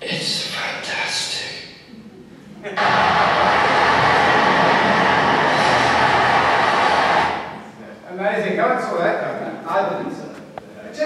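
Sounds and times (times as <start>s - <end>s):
loud rushing noise over loudspeakers: 2.8s - 7.9s.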